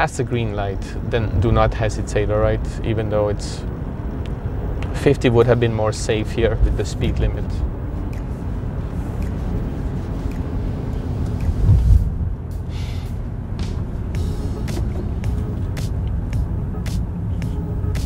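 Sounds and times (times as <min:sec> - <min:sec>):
tyre and engine rumble: 0:00.0 - 0:18.0
car thump: 0:13.6 - 0:16.0.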